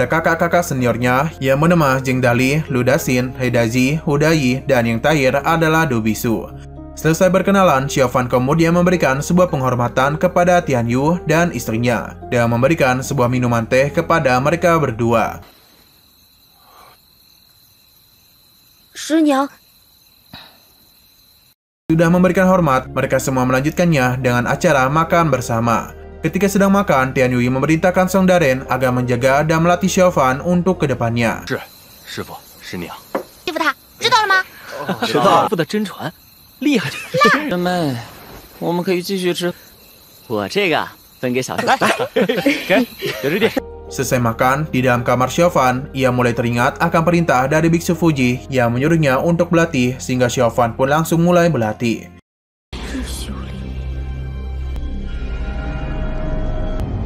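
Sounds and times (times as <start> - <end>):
crickets chirring: 7.0 - 21.6, 24.8 - 51.8
animated characters speaking: 31.4 - 38.0.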